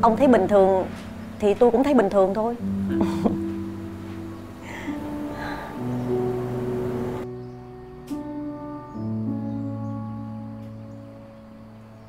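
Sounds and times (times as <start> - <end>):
background hiss: 0.0 - 12.0
soft background music: 0.0 - 12.0.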